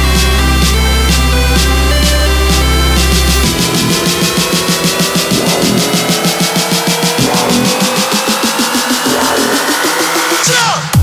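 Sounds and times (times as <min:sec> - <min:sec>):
electronic dance music build-up: 0:00.0 - 0:11.0.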